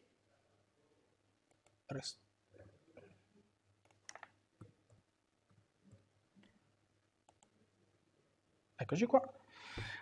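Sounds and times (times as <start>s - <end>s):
keyboard keystrokes: 3.8s - 4.3s
mouse clicks: 3.8s - 5.0s, 7.2s - 7.5s.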